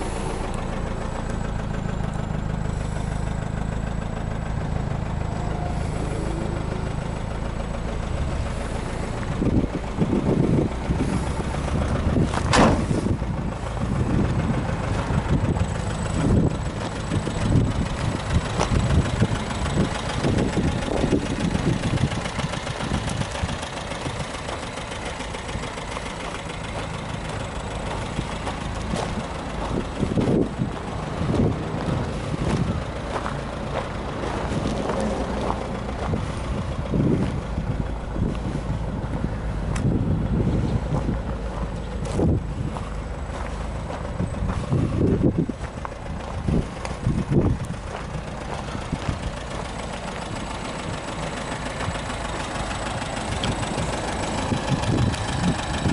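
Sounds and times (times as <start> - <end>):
car engine idling: 0.0 - 55.9
wind buffeting microphone: 5.1 - 24.6, 26.6 - 55.9.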